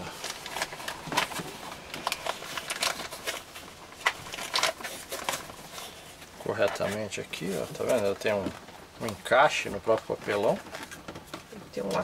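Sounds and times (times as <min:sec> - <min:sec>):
cardboard rustling: 0:00.0 - 0:12.0.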